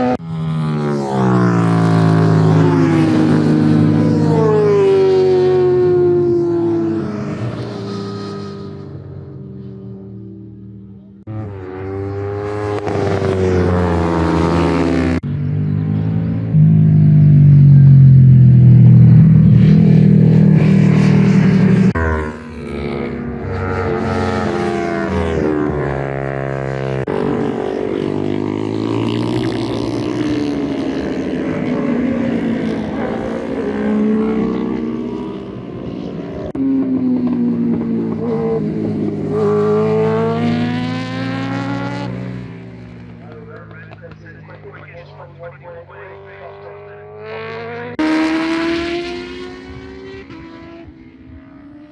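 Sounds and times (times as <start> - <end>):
racing motorcycle passing by: 0.0 - 51.9.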